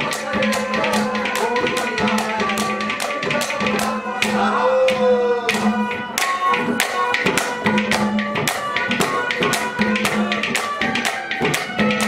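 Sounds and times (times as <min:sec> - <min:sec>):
drum: 0:00.0 - 0:12.0.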